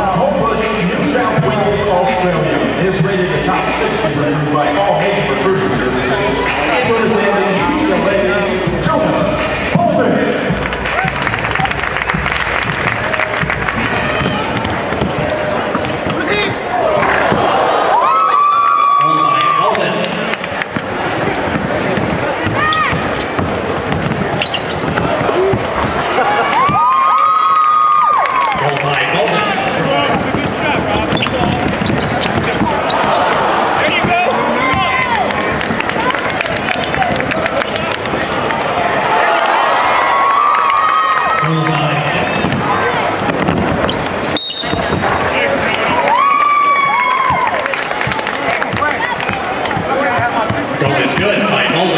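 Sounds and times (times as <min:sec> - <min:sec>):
crowd noise and voices: 0:00.0 - 0:51.9
basketball bouncing on court: 0:12.1 - 0:17.5, 0:20.6 - 0:26.9, 0:29.8 - 0:37.5, 0:42.2 - 0:46.0, 0:48.0 - 0:51.4.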